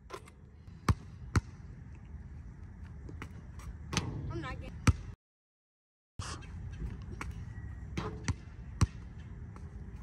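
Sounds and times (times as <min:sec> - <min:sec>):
basketball bouncing on court: 0:00.8 - 0:01.6, 0:03.1 - 0:05.2, 0:08.0 - 0:09.7.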